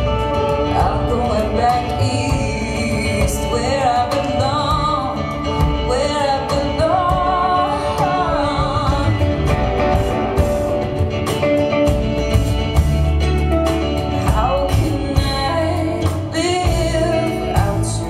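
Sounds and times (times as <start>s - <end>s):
woman singing: 0.0s - 10.3s, 14.0s - 18.0s
acoustic guitar: 0.0s - 18.0s
drums and cymbals: 0.0s - 18.0s.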